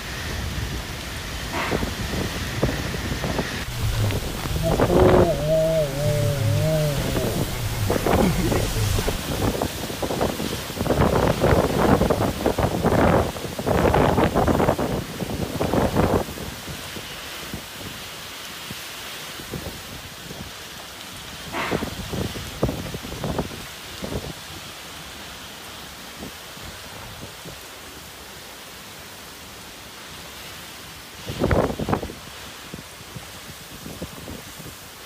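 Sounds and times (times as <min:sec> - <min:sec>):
heavy rain hissing: 0:00.0 - 0:15.4
wind gusts buffeting microphone: 0:02.0 - 0:14.7.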